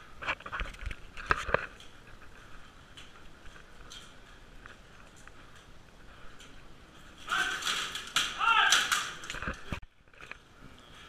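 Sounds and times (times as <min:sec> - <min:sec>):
loud shouting: 0:07.3 - 0:09.2
weapons striking: 0:07.3 - 0:09.4.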